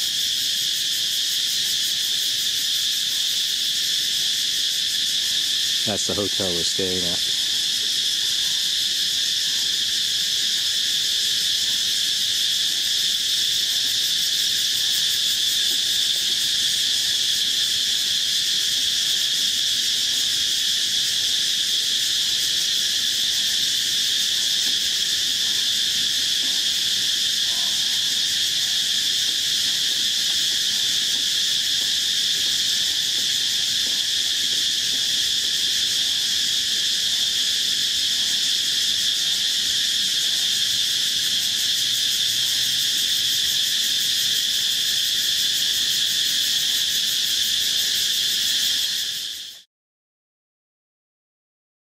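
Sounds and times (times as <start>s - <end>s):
insects buzzing chorus: 0.0s - 49.7s.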